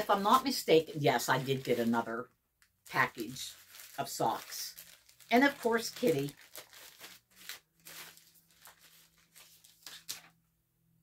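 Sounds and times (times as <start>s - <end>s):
package crinkling and tearing: 2.8s - 10.4s.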